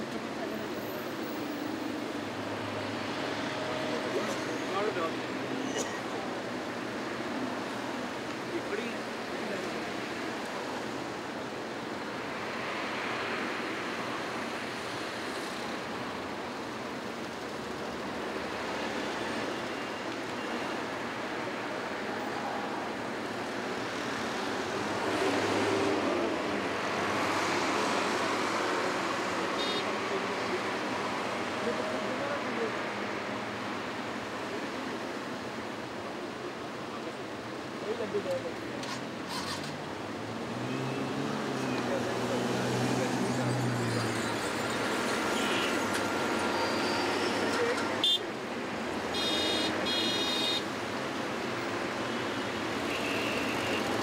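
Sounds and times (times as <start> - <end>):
car engines and tyres: 0.0 - 54.0.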